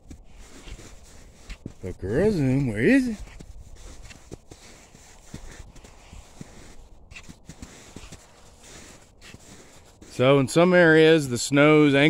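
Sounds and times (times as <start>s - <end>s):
footsteps on snow and grass: 0.0s - 12.0s.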